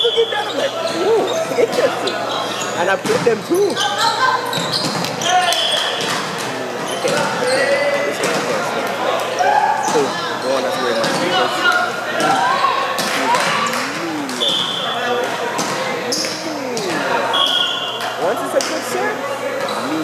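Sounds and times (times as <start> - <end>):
voices chattering and echoing: 0.0 - 20.0.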